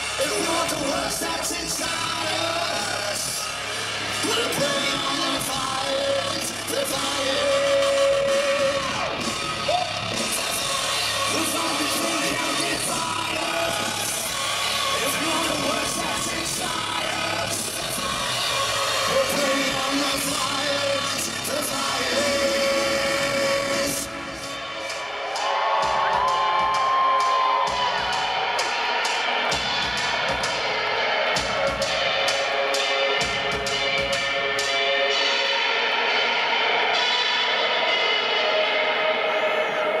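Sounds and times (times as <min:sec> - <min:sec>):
heavy rock band playing live: 0:00.0 - 0:25.1.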